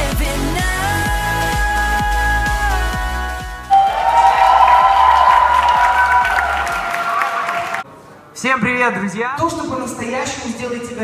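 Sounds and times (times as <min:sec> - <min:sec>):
long held note: 0:03.7 - 0:05.8
crowd cheering: 0:03.7 - 0:07.9.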